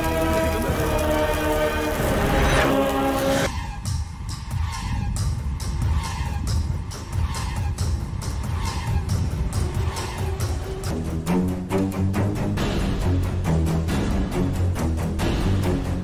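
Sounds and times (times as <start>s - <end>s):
hollow pulsing beats: 0.0s - 16.0s
sustained horror music tones: 0.0s - 16.0s.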